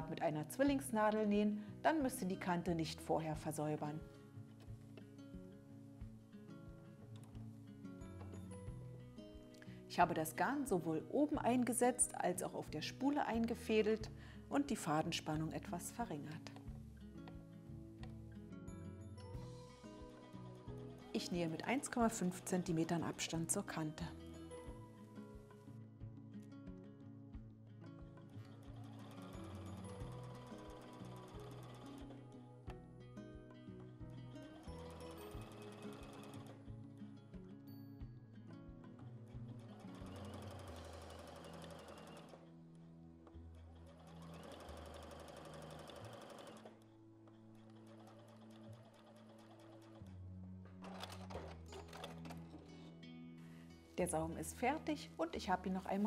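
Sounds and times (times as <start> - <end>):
background music: 0.0 - 56.0
sewing machine stitching: 20.8 - 23.8, 28.3 - 32.3, 34.4 - 36.6, 39.5 - 42.5, 43.6 - 46.8, 47.6 - 50.1, 50.8 - 52.9.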